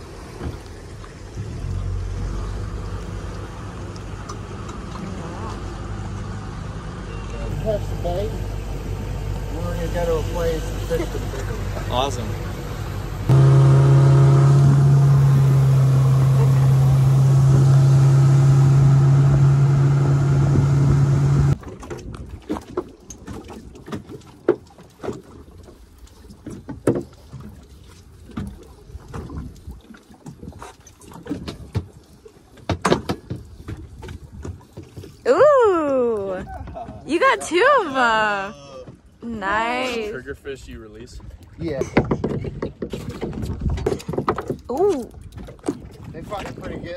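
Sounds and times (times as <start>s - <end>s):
outboard motor droning: 0.0s - 41.6s
clicks and knocks on boat: 21.6s - 35.2s, 41.8s - 46.9s.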